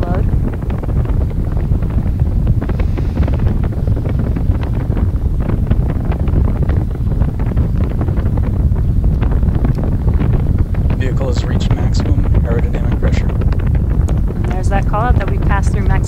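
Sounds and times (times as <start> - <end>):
rocket engines rumbling and crackling: 0.0 - 16.0.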